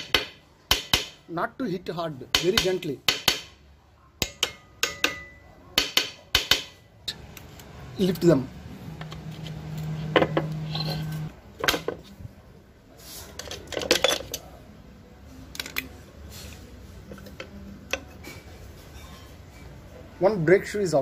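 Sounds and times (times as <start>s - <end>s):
screwdriver clinking on metal: 13.4s - 14.5s.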